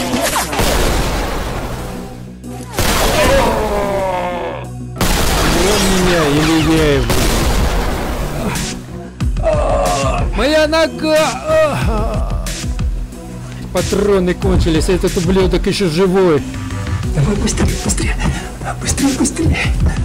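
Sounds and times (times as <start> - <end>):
film background music: 0.0 - 20.0
pistol gunshots: 0.4 - 3.5, 5.0 - 8.4.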